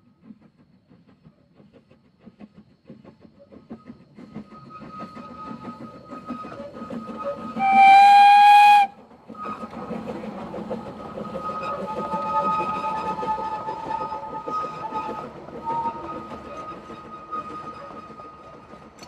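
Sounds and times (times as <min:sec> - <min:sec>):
train exhaust and wheels rumbling: 0:00.0 - 0:19.0
steam locomotive whistle: 0:04.7 - 0:09.6, 0:11.2 - 0:18.4.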